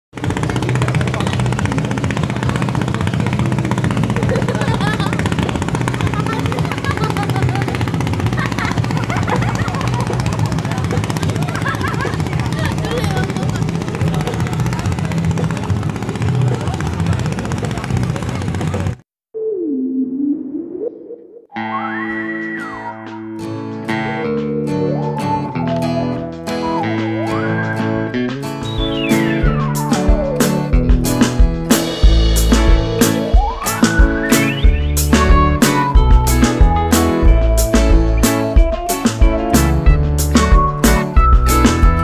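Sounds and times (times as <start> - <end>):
mix of voices: 0.2 - 19.0
guitar music: 21.6 - 42.0.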